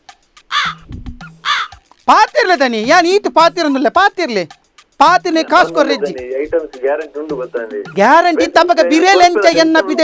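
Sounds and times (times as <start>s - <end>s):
harsh crow-like caws: 0.4s - 1.9s.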